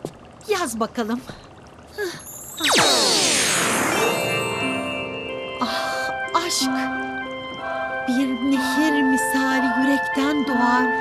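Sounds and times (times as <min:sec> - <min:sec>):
steady chiming tones: 0:02.2 - 0:10.9
shimmering magic spell cascade: 0:02.3 - 0:05.6.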